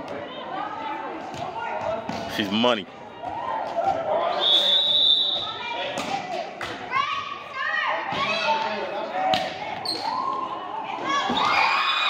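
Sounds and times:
players' voices: 0.0s - 11.6s.

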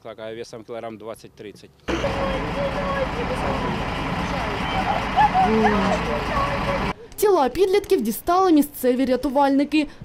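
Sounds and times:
people talking: 0.5s - 9.9s
truck engine running: 1.9s - 7.0s.

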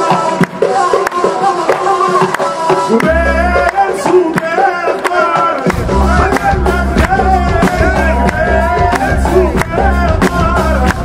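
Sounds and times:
steady drum beat: 0.0s - 11.0s
deep bass: 3.0s - 3.8s, 5.7s - 11.0s.

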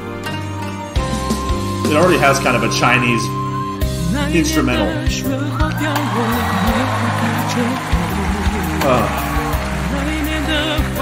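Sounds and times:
low sustained instrumental notes: 0.0s - 5.5s
male voice singing: 3.9s - 11.0s.

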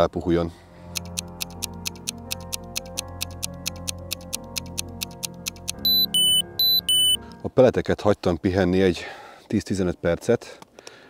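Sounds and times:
rapid clock ticking: 1.0s - 7.2s
high-pitched alarm beeps: 5.8s - 7.2s.

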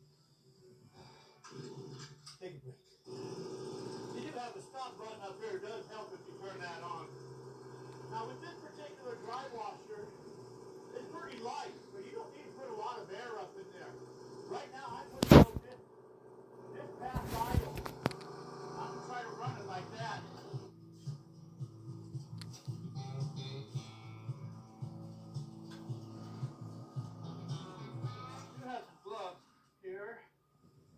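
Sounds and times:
music from television: 0.0s - 12.1s, 12.9s - 15.6s, 17.1s - 29.8s
speech from television: 1.6s - 3.1s, 4.0s - 7.2s, 7.8s - 10.2s, 10.9s - 15.8s, 16.7s - 18.0s, 18.7s - 20.6s, 28.2s - 30.4s.

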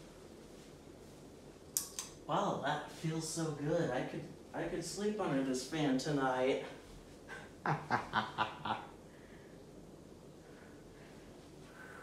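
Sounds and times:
ceiling fan humming: 0.0s - 12.0s.

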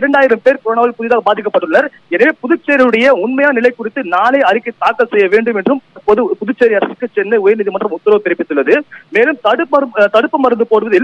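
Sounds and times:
man talking over telephone: 0.0s - 11.0s.

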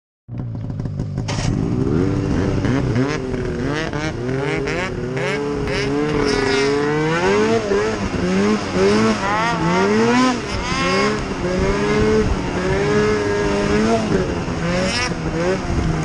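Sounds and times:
snowmobile engine revving: 1.2s - 16.0s.

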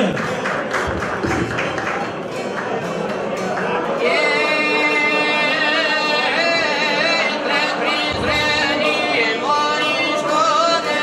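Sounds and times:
strummed lutes: 0.3s - 11.0s.

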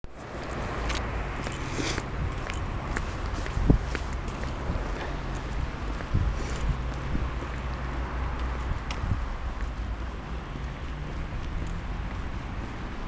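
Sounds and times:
footsteps on frosty path: 0.1s - 13.0s
wind rumble on microphone: 0.1s - 13.0s.

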